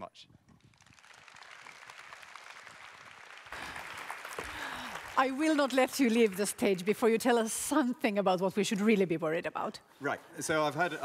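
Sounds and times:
audience applauding: 0.7 - 7.3.

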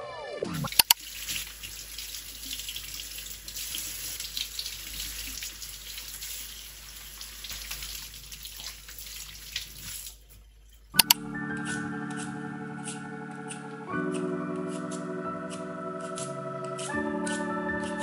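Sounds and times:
faucet water splashing on vegetables: 0.7 - 10.9.

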